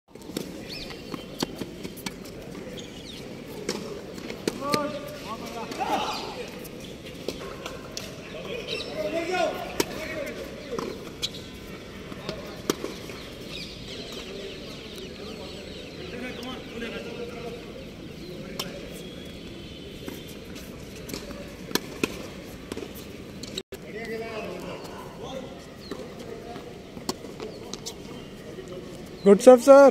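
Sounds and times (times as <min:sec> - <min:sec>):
voices: 0:00.3 - 0:29.9
tennis racquets striking ball: 0:09.6 - 0:13.5, 0:21.0 - 0:23.5.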